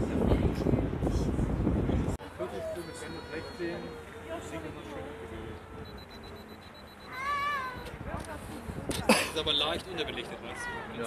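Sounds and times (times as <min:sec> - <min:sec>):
high-pitched meow-like cry: 0:07.1 - 0:07.8.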